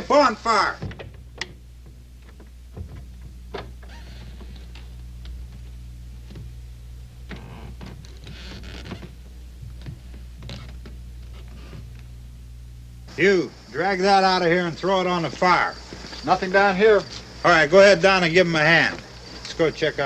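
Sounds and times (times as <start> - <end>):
steady low hum: 0.0 - 20.0
faint knocks: 0.8 - 6.6.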